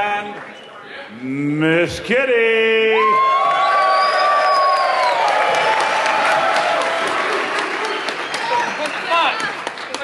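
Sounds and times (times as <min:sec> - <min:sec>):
audience applauding: 0:03.2 - 0:10.0.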